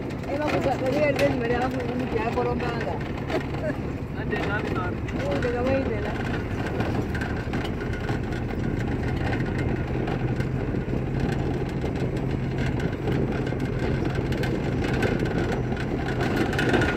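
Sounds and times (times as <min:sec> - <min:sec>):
knocks and rattles: 0:00.0 - 0:16.9
road and wind noise: 0:00.0 - 0:16.9
truck engine hum: 0:00.0 - 0:16.9.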